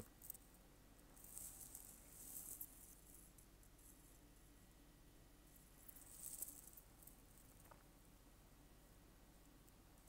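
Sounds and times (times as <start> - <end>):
rustling and scraping handling noise: 1.2 - 4.2, 5.9 - 7.8.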